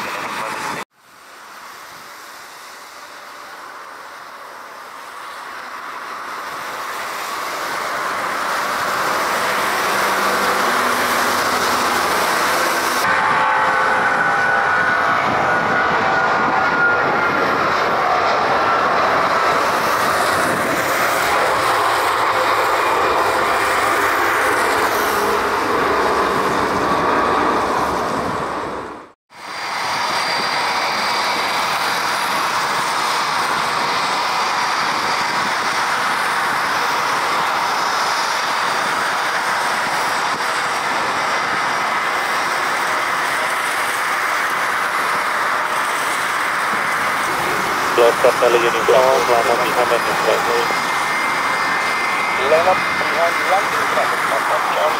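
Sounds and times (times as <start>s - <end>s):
jet engines at takeoff thrust: 0.0s - 54.9s.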